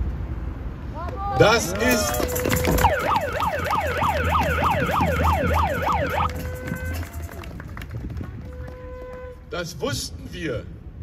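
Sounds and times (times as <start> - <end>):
electronic siren yelping: 2.0 - 7.2.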